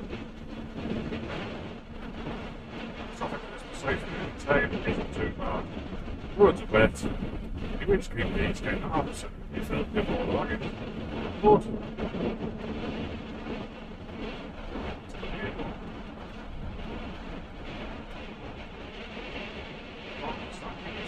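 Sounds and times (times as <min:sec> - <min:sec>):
road and engine noise in van cab: 0:00.0 - 0:21.0.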